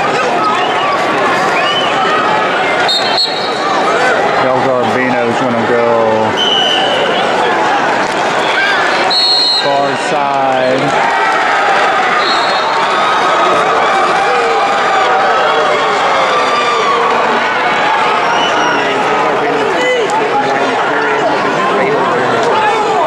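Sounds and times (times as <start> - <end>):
crowd yelling and cheering: 0.0 - 23.0.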